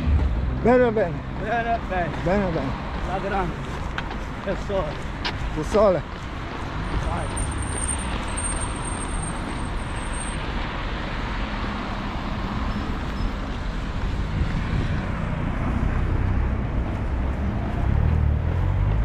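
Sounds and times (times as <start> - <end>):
road traffic rumble: 0.0 - 19.0.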